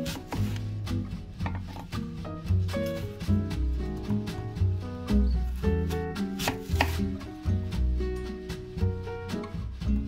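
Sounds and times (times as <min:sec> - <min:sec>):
background music: 0:00.0 - 0:10.0
knife cutting onto wooden board: 0:06.4 - 0:07.1.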